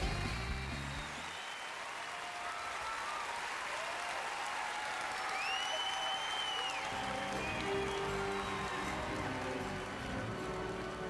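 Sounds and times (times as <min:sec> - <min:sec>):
audience applauding: 0:00.0 - 0:11.0
long high whistle: 0:05.3 - 0:09.0.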